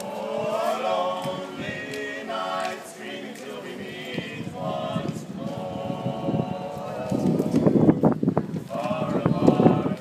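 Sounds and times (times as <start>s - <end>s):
men singing in close harmony: 0.0s - 8.0s, 8.7s - 10.0s.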